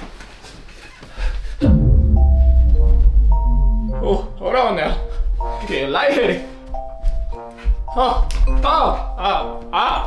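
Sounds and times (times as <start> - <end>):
falling bass-drop effect: 1.6 - 5.5
deep rumble: 1.6 - 5.8
musical sting: 1.6 - 6.6.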